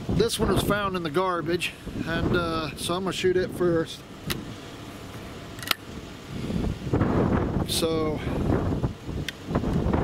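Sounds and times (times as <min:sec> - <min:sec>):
wind buffeting microphone: 0:00.0 - 0:04.6, 0:05.9 - 0:10.0.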